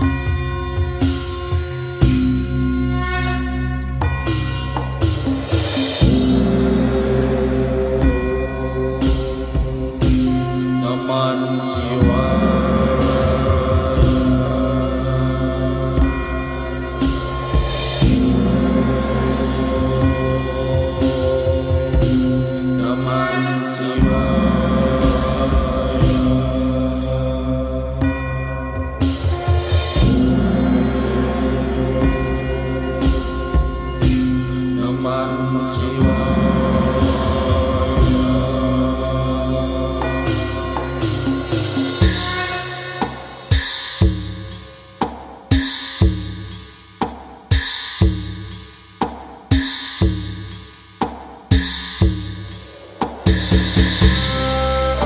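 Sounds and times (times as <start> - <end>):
steady drum beat: 0.0 - 3.2, 3.8 - 55.0
held low notes: 0.0 - 42.6
devotional music with chanting: 0.0 - 46.6.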